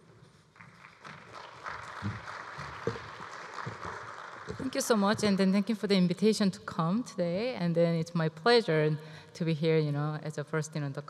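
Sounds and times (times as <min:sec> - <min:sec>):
audience applauding: 0:00.6 - 0:05.2.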